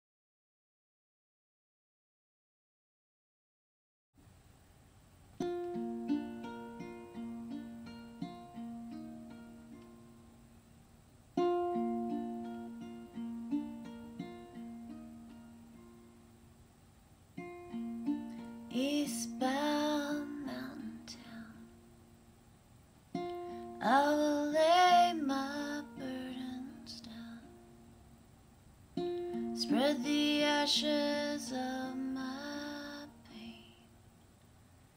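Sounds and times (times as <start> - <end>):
plucked string instrument: 5.4 - 10.5, 11.4 - 16.5, 17.4 - 22.3, 23.1 - 28.2, 28.9 - 33.5
woman singing: 18.7 - 21.8, 23.6 - 27.6, 29.4 - 33.9.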